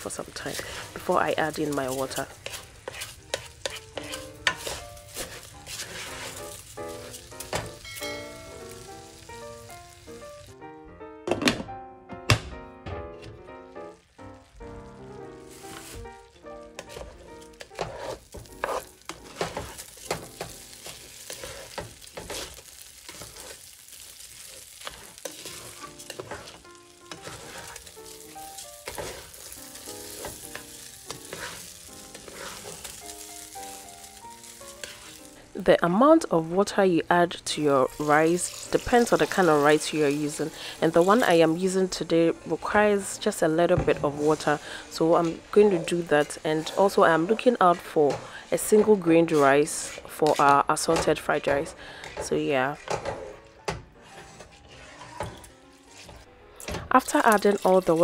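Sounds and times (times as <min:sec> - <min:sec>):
rice sizzling in oil: 0:00.0 - 0:10.6, 0:13.7 - 0:53.4, 0:57.0 - 0:58.0
spatula scraping pan: 0:00.1 - 0:07.9, 0:16.7 - 0:35.4, 0:37.6 - 0:56.3.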